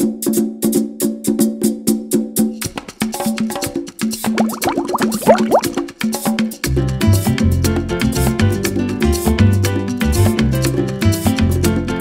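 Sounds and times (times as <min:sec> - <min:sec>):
latin percussion music: 0:02.6 - 0:07.1
short rising plop-like notes: 0:04.3 - 0:05.8.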